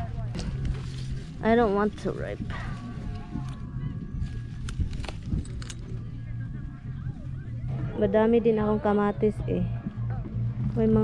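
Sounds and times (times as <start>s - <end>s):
leaves rustling: 0.4s - 3.6s.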